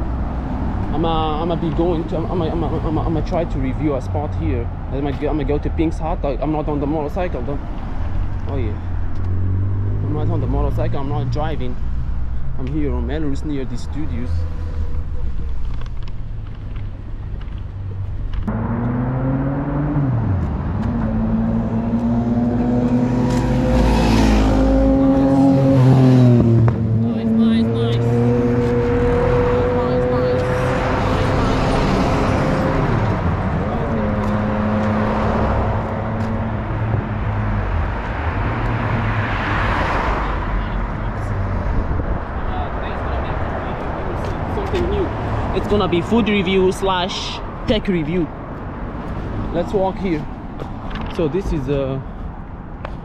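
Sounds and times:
cars driving past: 0.0s - 53.0s.

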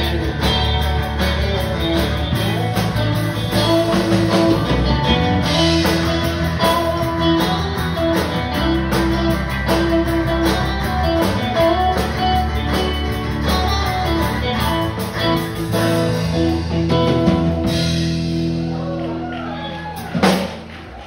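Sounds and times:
country band playing: 0.0s - 21.0s.

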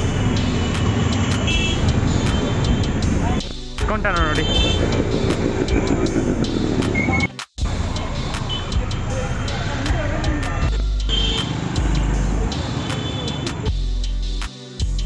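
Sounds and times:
motorbikes and traffic passing: 0.0s - 13.8s
bass-heavy music over loudspeakers: 0.0s - 15.0s.

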